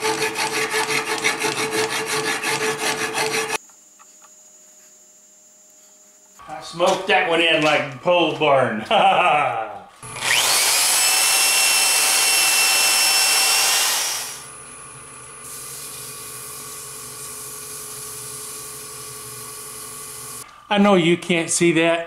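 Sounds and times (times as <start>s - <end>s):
lathe humming: 0.0s - 3.6s, 10.0s - 15.4s
power sander whine: 10.0s - 15.0s.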